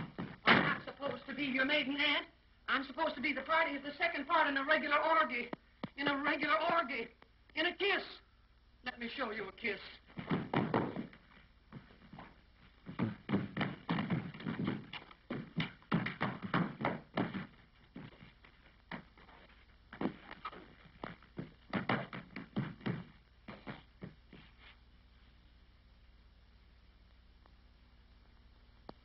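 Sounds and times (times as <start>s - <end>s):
shoes scuffling and stamping: 0.0s - 1.4s, 10.1s - 24.8s.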